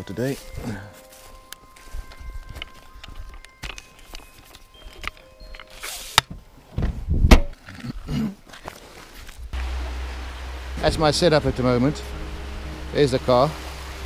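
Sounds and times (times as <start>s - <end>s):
faint background music: 0.0s - 6.2s, 10.7s - 14.0s
footsteps on forest floor: 0.0s - 6.2s, 8.4s - 9.8s
wind rumble on microphone: 6.8s - 7.4s.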